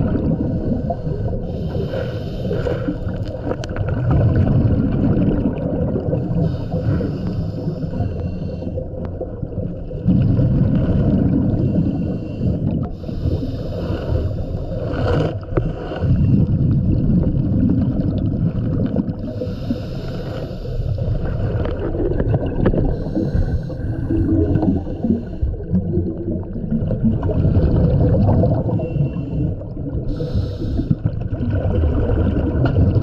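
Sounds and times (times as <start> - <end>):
exhaled bubbles gushing: 0.0 - 1.6, 2.6 - 7.1, 8.8 - 13.0, 14.8 - 19.6, 20.9 - 33.0
regulator hissing inhale: 0.4 - 3.2, 6.4 - 8.9, 11.6 - 15.0, 19.2 - 21.5, 22.8 - 25.7, 28.7 - 31.2.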